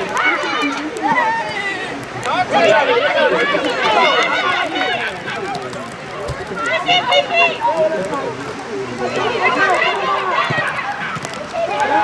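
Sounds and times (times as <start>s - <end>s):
high voices shouting: 0.0s - 12.0s.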